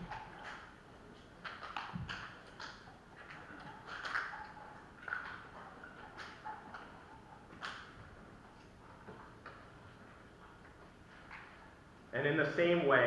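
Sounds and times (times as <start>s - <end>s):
faint clicks and rustles: 0.0s - 12.2s.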